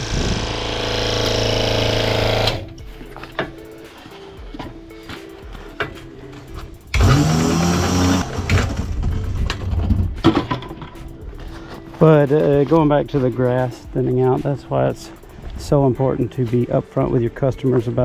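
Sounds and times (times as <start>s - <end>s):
electric hose reel motor humming: 0.0s - 2.8s, 6.9s - 9.0s.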